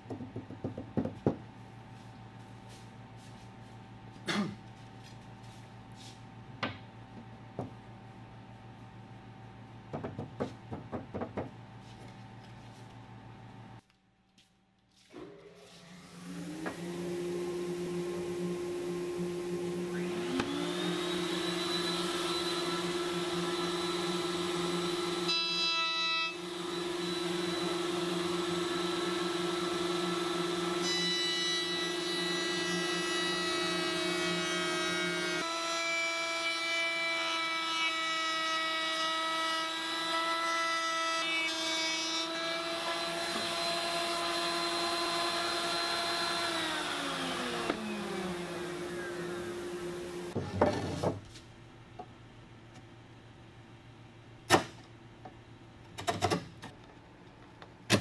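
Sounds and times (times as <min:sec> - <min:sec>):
router whining: 0:19.2 - 0:25.3, 0:42.6 - 0:50.4.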